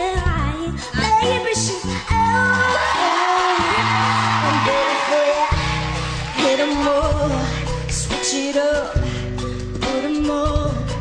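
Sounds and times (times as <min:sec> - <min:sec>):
woman singing: 0:00.0 - 0:05.7, 0:06.3 - 0:11.0
live backing band: 0:00.0 - 0:11.0
audience cheering and applause: 0:02.1 - 0:07.6.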